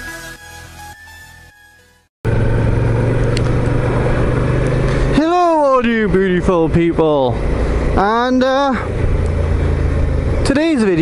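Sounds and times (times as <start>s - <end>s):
electronic music: 0.0s - 2.0s
motorcycle engine cruising: 2.2s - 11.0s
wind and road noise: 2.2s - 11.0s.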